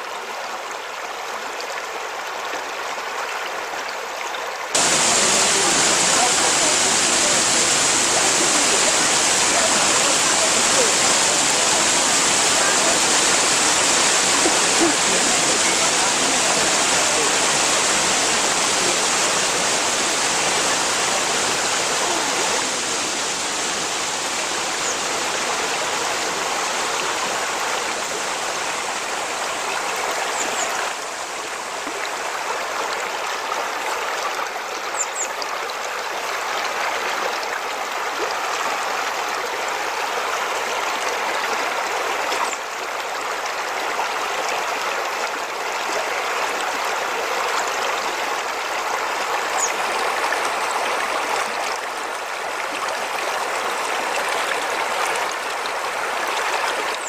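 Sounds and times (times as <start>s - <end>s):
waterfall rushing: 4.7s - 34.8s, 35.7s - 57.0s.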